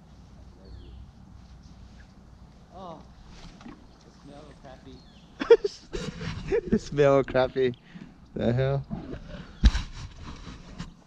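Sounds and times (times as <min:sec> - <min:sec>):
faint rustling handling noise: 0:00.0 - 0:05.0.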